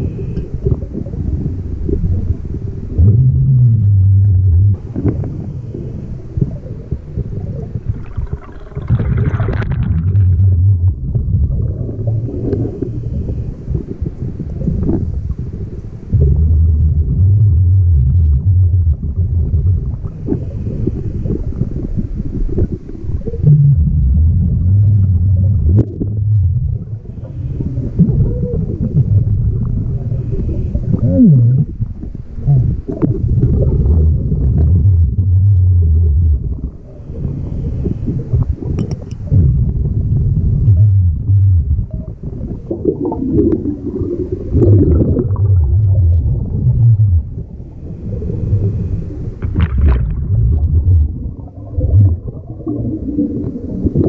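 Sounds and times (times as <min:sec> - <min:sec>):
exhaled bubbles rumbling underwater: 0:00.0 - 0:54.0
faint hissing inhalations: 0:12.2 - 0:13.8, 0:20.2 - 0:21.7, 0:30.0 - 0:31.0, 0:36.8 - 0:38.4, 0:47.7 - 0:49.4.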